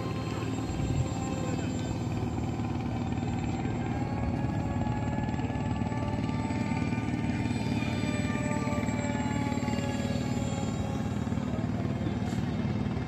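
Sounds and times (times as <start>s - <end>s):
model airplane motor droning: 0.0s - 13.0s.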